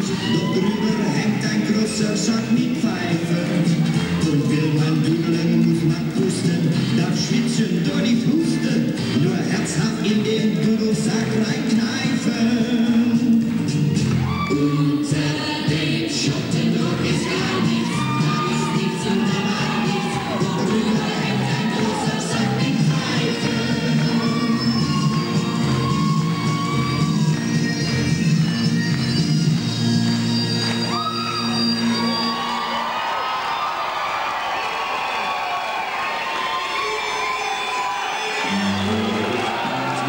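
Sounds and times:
audience cheering and whooping: 0.0 - 2.2, 3.0 - 5.7, 13.8 - 15.6, 16.8 - 40.0
stage music: 0.0 - 40.0.

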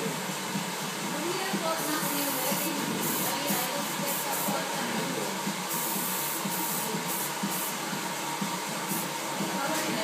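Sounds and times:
aerosol hairspray hissing: 1.6 - 4.9, 5.7 - 7.9, 8.8 - 9.8.

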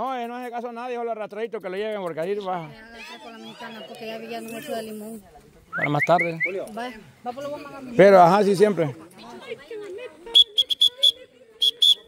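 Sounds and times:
whistle blasts: 10.3 - 12.0.

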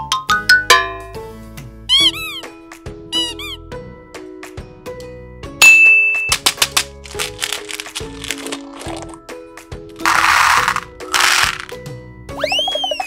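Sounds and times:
children's background music: 0.0 - 13.0
squishy toy squeaks: 1.9 - 2.5, 3.1 - 3.6, 12.4 - 13.0
quick clicks: 6.3 - 9.1
brief rustling: 6.3 - 9.2.

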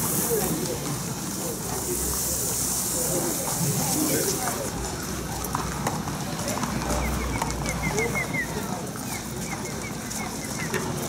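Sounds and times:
horse hooves clip-clopping: 2.6 - 11.0.

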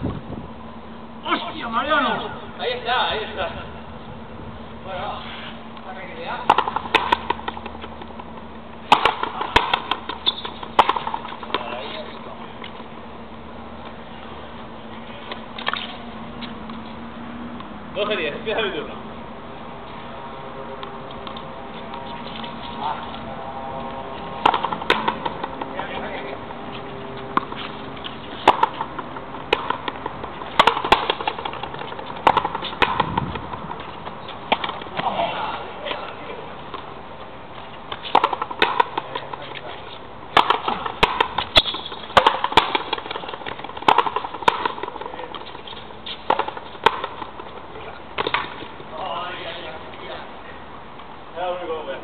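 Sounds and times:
ball cracks off racket and wall: 8.9 - 11.6, 28.4 - 33.2, 40.3 - 45.0.

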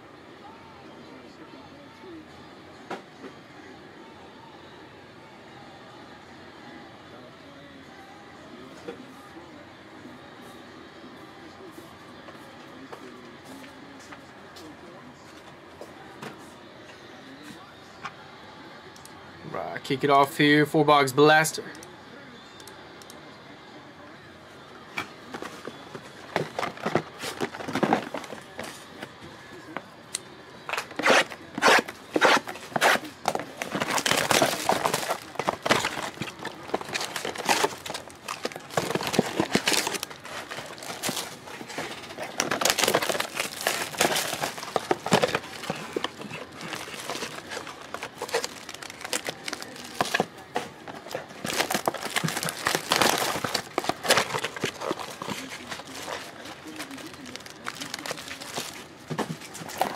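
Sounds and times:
plastic wrapping crinkling and tearing: 25.3 - 29.1, 30.7 - 59.9.

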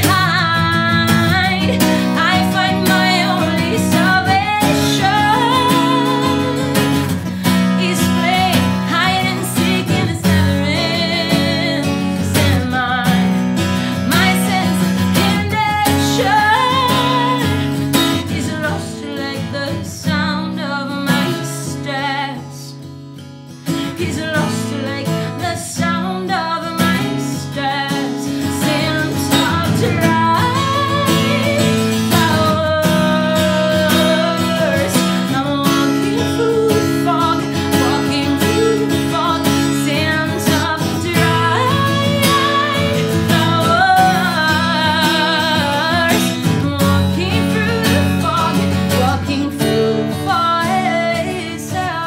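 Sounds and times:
woman singing: 0.0 - 23.0, 23.7 - 52.0
strummed acoustic guitar: 0.0 - 52.0.

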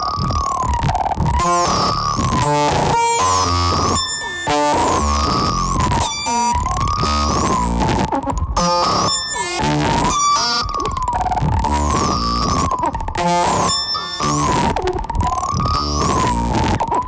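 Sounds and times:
wavering synthesizer tone: 0.0 - 17.0.

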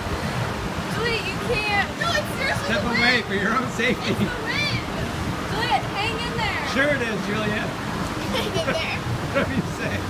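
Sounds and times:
fan wind buffeting microphone: 0.0 - 10.0.

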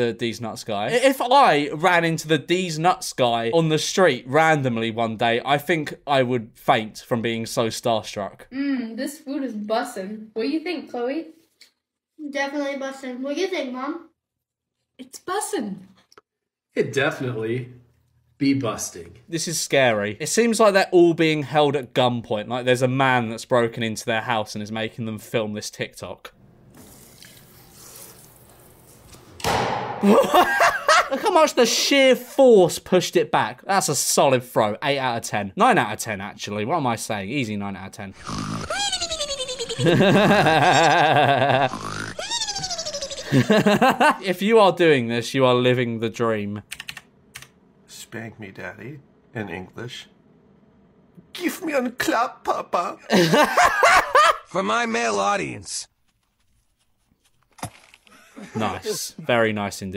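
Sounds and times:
toilet paper roll hitting wall: 29.4 - 30.2.

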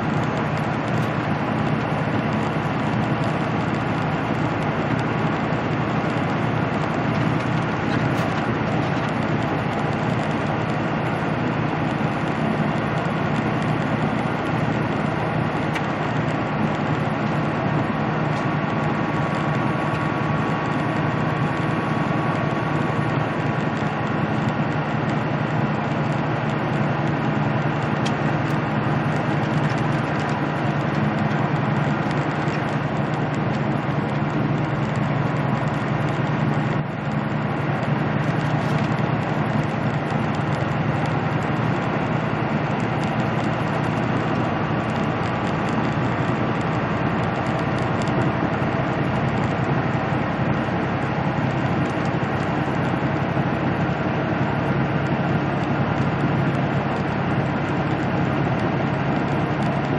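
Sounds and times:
diesel engine drone: 0.0 - 59.9
road and tyre noise: 0.0 - 59.9.

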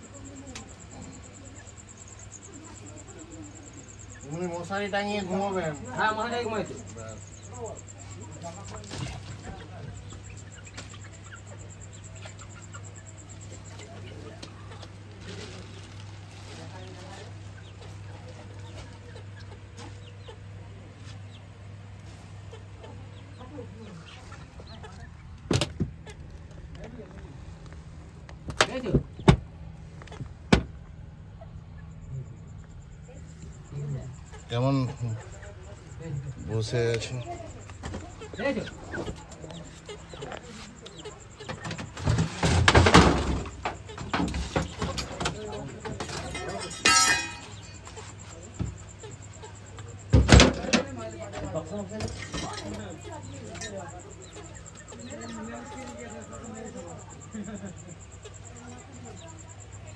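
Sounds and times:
chickens and chicks calling: 0.0 - 59.9
steady low hum: 0.0 - 59.9.

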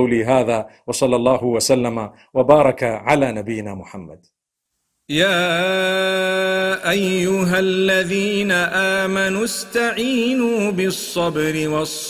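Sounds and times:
man chanting melodically: 5.1 - 12.0.

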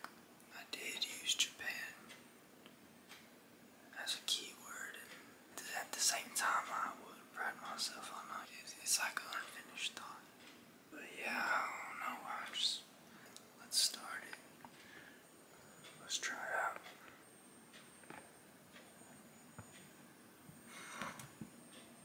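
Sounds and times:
man whispering: 0.5 - 2.1, 3.9 - 10.3, 10.9 - 12.9, 13.5 - 14.5, 15.8 - 17.1.

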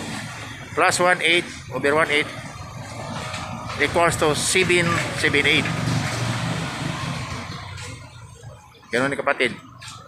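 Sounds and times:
passing vehicle engine and road noise: 0.0 - 10.0.

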